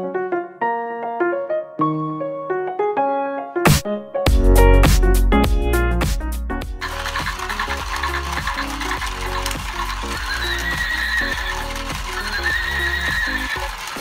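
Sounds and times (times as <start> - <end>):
toy music: 6.8 - 14.0
toy horse whinny: 6.9 - 14.0.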